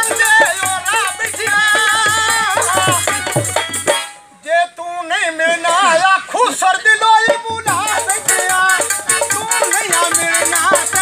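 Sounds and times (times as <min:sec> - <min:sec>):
man singing unaccompanied folk verse: 0:00.0 - 0:11.0.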